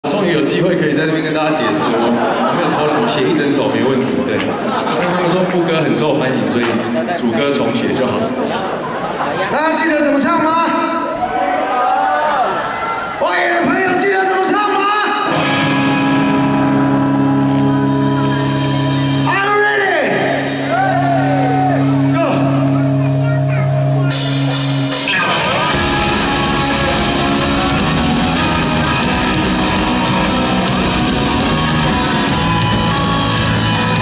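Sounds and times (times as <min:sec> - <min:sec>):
rock band sustained chord: 0:15.2 - 0:34.0.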